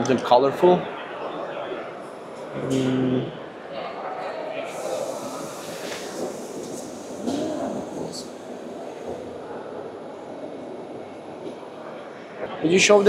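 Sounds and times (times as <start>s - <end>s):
distant indistinct voices: 0.0s - 13.0s.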